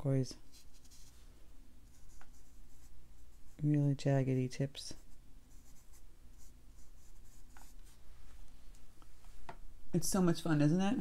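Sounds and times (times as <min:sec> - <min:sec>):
brush scratching on paper: 0:00.4 - 0:01.3, 0:01.9 - 0:03.6, 0:04.9 - 0:08.0.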